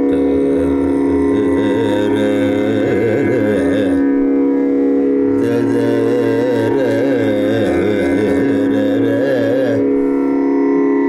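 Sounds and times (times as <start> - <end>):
man singing with pitch bends: 0.0 - 11.0
steady drone: 0.0 - 11.0.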